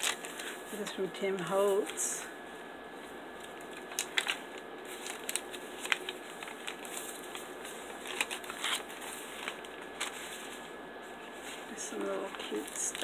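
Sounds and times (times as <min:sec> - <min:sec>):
paper crackles and snaps: 0:00.0 - 0:00.6, 0:03.4 - 0:10.6, 0:11.5 - 0:13.0
paper pages rustling: 0:00.0 - 0:00.7, 0:03.4 - 0:13.0.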